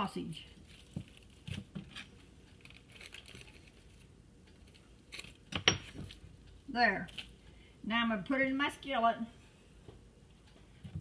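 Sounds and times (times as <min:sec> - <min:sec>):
plastic wrap crinkling: 0:00.5 - 0:05.5.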